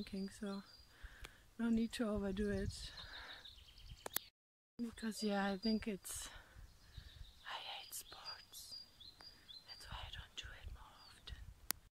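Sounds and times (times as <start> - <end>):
woman whispering: 7.4 - 8.8, 9.7 - 11.5.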